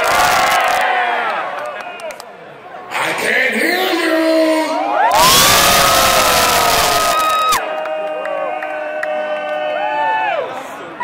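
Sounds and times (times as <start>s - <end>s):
concert crowd cheering and shouting: 4.0s - 11.0s.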